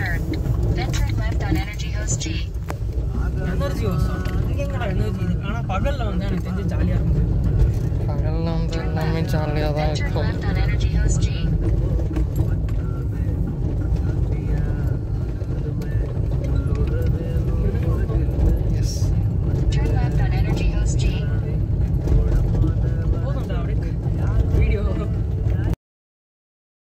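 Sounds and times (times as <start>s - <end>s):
people talking: 0.0s - 2.5s, 3.1s - 7.3s, 8.1s - 11.5s, 12.4s - 25.8s
car cabin road rumble: 0.0s - 25.8s.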